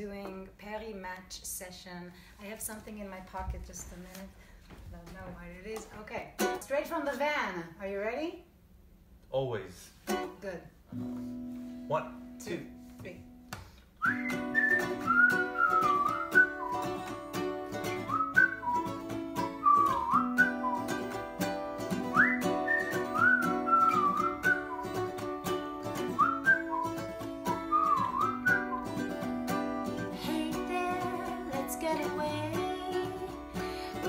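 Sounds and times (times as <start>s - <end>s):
strummed acoustic guitar and ukulele: 10.0s - 34.0s
whistled melody: 14.0s - 17.2s, 17.9s - 21.2s, 22.0s - 25.2s, 26.0s - 29.2s.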